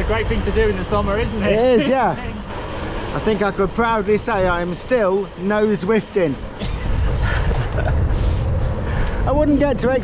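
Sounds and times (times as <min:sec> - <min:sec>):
wind buffeting microphone: 0:02.3 - 0:10.0.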